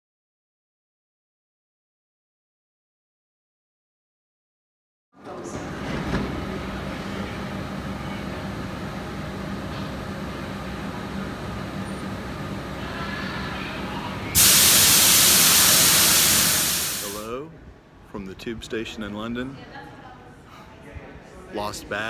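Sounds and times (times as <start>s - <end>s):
electric train humming: 5.4s - 17.4s
air release hiss: 14.4s - 17.3s.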